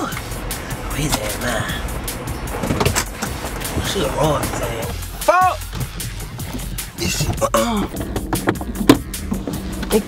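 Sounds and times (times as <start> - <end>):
background music: 0.0 - 10.0
vehicle engine and road rumble: 0.0 - 10.0.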